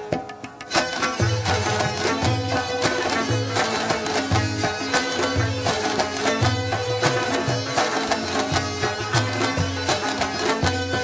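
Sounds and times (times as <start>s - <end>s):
plucked string notes: 0.0s - 11.0s.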